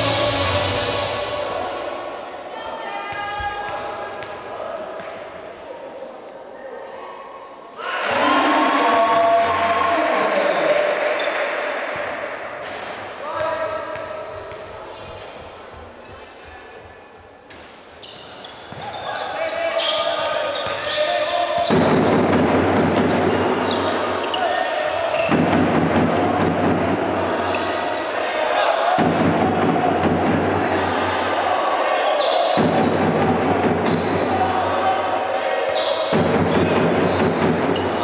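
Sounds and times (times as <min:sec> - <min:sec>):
crowd voices in large hall: 0:00.0 - 0:38.0.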